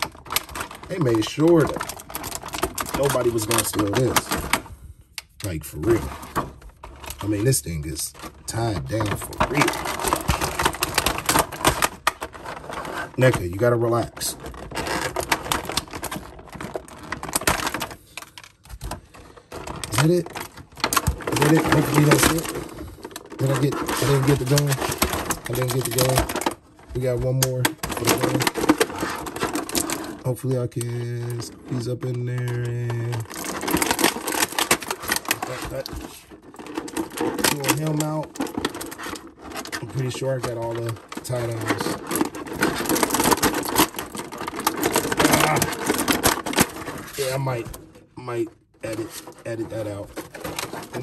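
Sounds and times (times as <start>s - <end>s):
plastic clicks and crackles: 0.0s - 5.6s, 8.0s - 51.0s
knife cutting plastic: 32.9s - 47.8s.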